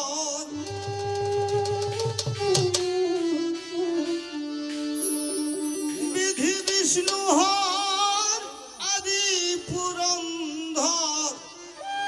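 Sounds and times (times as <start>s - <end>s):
instrumental accompaniment: 0.0s - 12.0s
man singing folk song: 6.1s - 11.4s.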